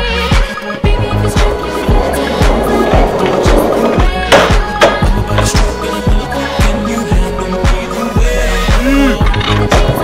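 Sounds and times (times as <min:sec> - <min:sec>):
music with steady beat: 0:00.0 - 0:10.0
skateboard rolling on pavement: 0:00.7 - 0:05.6
skateboard clack: 0:02.0 - 0:05.6.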